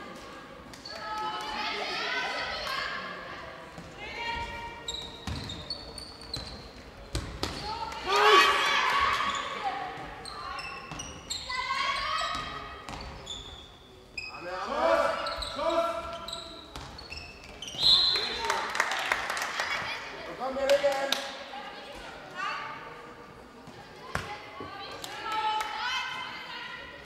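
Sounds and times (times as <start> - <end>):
people shouting: 8.0 - 8.8.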